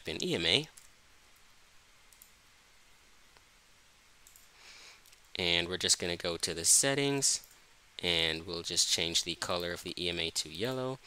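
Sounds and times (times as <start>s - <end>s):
faint computer mouse clicks: 2.1s - 2.4s, 4.2s - 5.3s.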